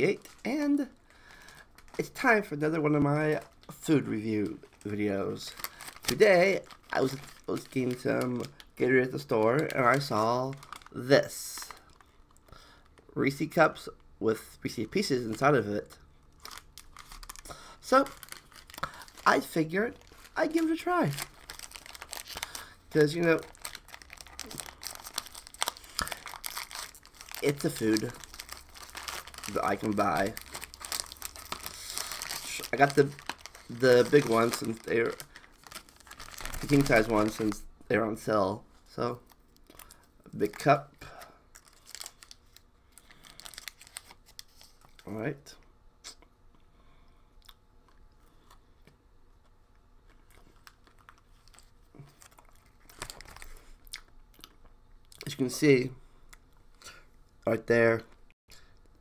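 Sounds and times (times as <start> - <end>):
plastic candy wrapper crinkling: 0.0 - 14.1, 15.0 - 45.2, 50.0 - 55.4
chewing crunchy candy: 50.0 - 55.3.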